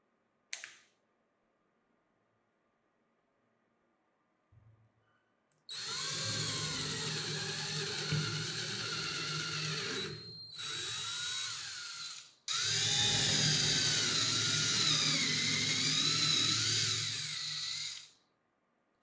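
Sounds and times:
electric drill boring into wood: 0:05.7 - 0:18.1.

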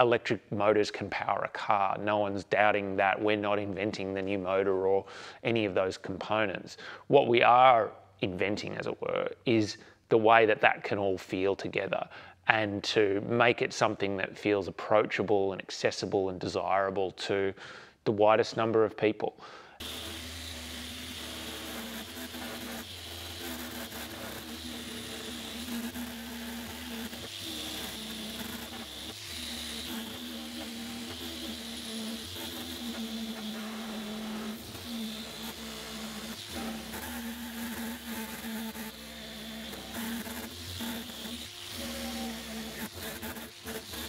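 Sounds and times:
orbital sander buzzing: 0:19.8 - 0:44.0.

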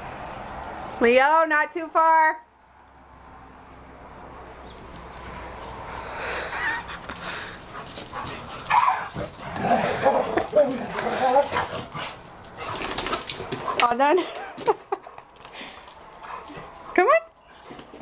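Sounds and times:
dogs barking and play-fighting: 0:00.0 - 0:01.1, 0:03.0 - 0:18.0.

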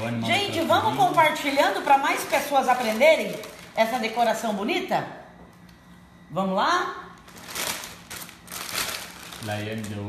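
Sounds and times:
thin plastic crinkling: 0:00.0 - 0:04.2, 0:07.2 - 0:10.0.

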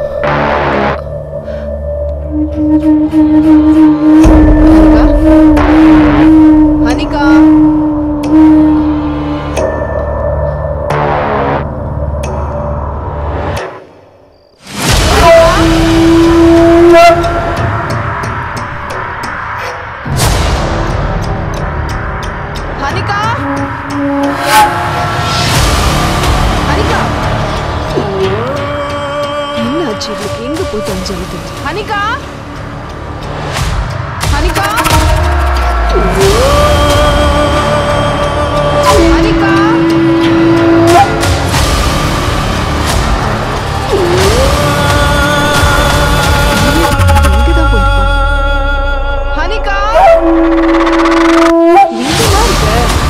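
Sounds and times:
low rumbling drone: 0:00.0 - 0:13.6, 0:14.2 - 0:53.0.

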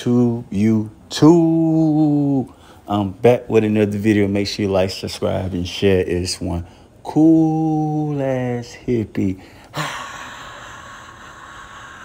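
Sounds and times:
breathy sigh: 0:09.4 - 0:12.0.

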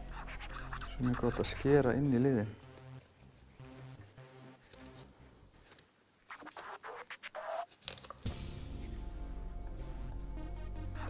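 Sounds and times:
knife scraping meat and bone: 0:00.0 - 0:01.7
background music: 0:00.0 - 0:05.8, 0:06.4 - 0:11.0.

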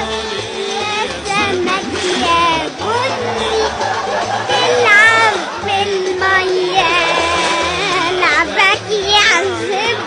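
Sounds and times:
children singing: 0:00.0 - 0:08.6
background music with steady beat: 0:00.0 - 0:10.0.

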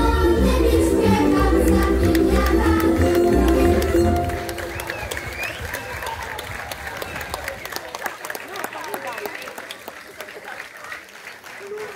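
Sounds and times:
crowd talking: 0:00.7 - 0:11.9
audience applauding: 0:01.7 - 0:11.9.

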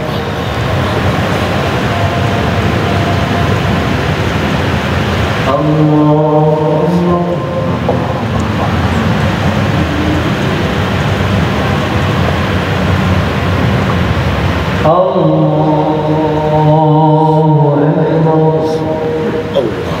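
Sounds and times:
loud rushing noise: 0:00.0 - 0:20.0
man chanting recitation: 0:05.4 - 0:09.2, 0:14.8 - 0:20.0.

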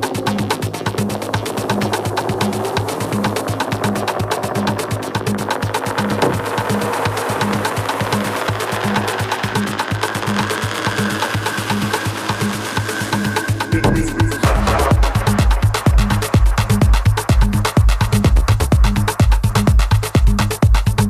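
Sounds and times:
high held tone: 0:00.0 - 0:18.2
electronic dance music: 0:00.0 - 0:21.0.

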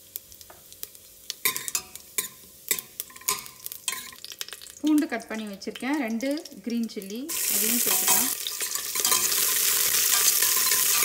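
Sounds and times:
seeds popping in hot oil: 0:00.0 - 0:11.0.

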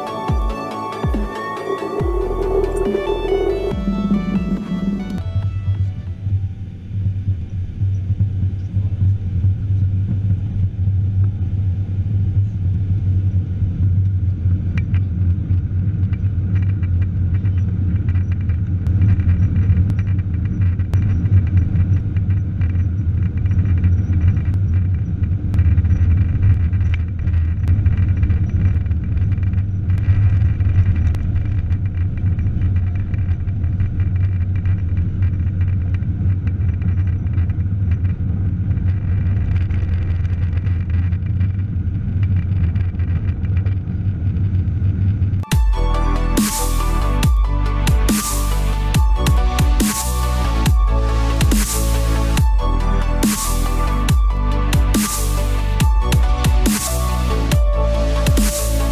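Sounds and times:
jet engine cabin rumble: 0:00.9 - 0:45.6.

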